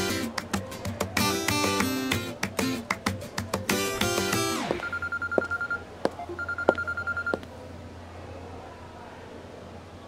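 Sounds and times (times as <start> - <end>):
guitar music: 0.0 - 4.8
telephone electronic trilling ring: 4.6 - 5.8, 6.4 - 7.4.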